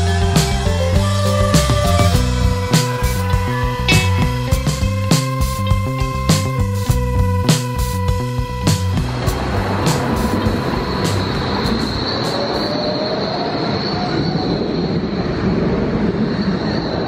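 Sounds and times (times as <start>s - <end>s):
jazz background music: 0.0s - 12.6s
wheels squealing on rails: 0.0s - 15.4s
tram wheels rumbling on track: 1.0s - 13.2s.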